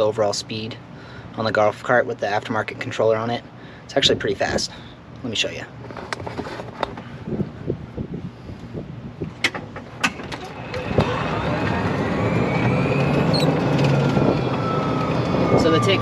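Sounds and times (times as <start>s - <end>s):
rush of noise: 10.0s - 16.0s
electric motor whine: 10.3s - 16.0s.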